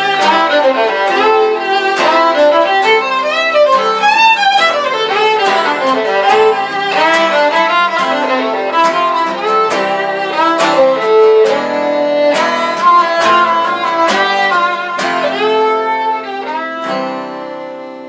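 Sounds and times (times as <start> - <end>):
fiddle playing a melody: 0.0 - 18.0
strummed acoustic guitar: 0.0 - 18.0.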